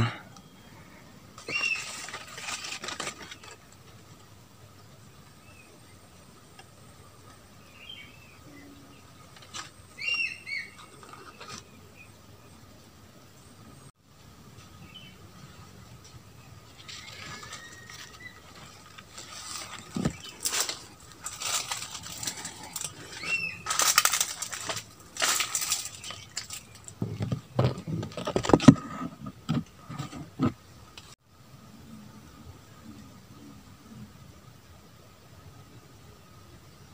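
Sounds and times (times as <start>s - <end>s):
leaves rustling against microphone: 0.0s - 36.9s
bird chirps: 9.9s - 12.1s, 23.1s - 23.7s.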